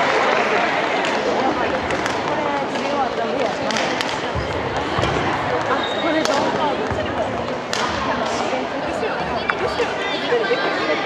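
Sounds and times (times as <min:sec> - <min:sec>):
spectators talking: 0:00.0 - 0:11.0.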